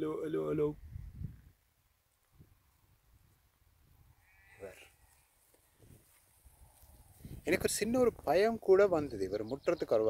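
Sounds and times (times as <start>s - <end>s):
sheep bleating: 4.2s - 5.3s.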